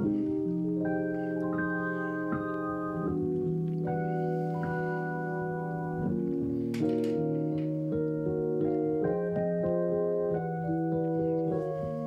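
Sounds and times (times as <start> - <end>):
keyboard playing ambient chords: 0.0 - 12.0.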